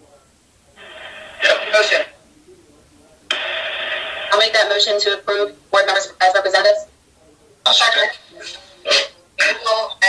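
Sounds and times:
microphone hiss with hum: 0.0s - 10.0s.

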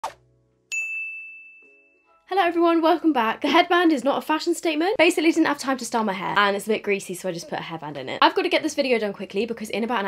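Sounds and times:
bright chime ding: 0.7s - 2.1s.

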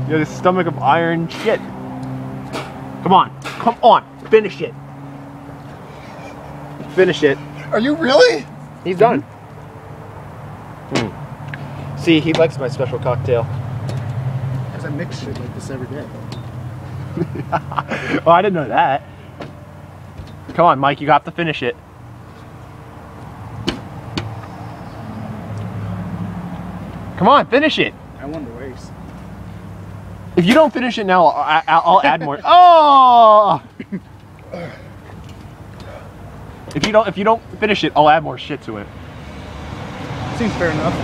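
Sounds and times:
outdoor background noise: 0.0s - 41.0s
sharp knocks: 23.6s - 24.4s.

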